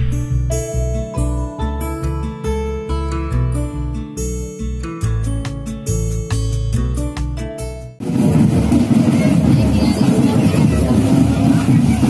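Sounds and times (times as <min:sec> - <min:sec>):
low rumble: 0:00.0 - 0:01.0, 0:08.0 - 0:12.0
crowd voices chattering: 0:08.8 - 0:12.0.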